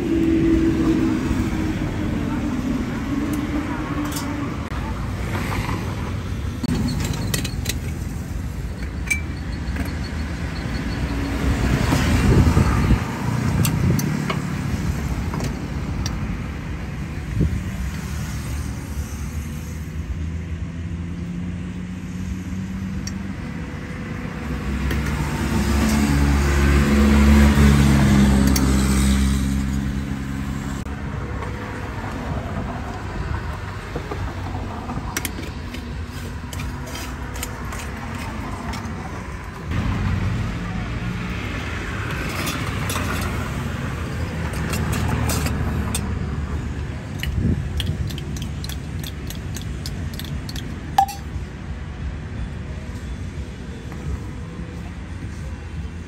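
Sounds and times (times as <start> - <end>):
road traffic passing: 0.0 - 56.0
kitchenware clinking: 51.0 - 51.3.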